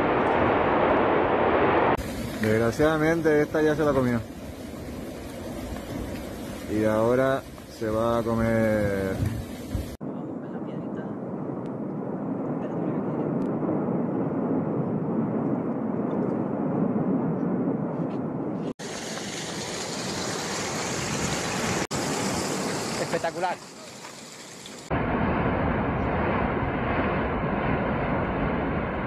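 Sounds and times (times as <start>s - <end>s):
rumbling roar of volcano erupting: 0.0s - 10.0s, 11.2s - 23.4s, 24.9s - 29.0s.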